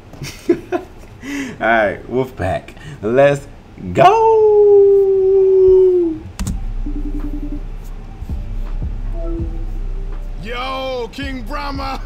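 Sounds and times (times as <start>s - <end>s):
low hum: 4.4s - 12.0s
sharp click: 6.4s - 6.6s
soft rapidly pulsing note: 6.6s - 11.6s.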